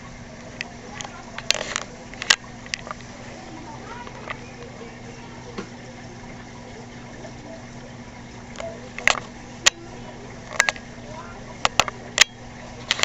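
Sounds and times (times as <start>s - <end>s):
aquarium filter humming: 0.0s - 13.0s.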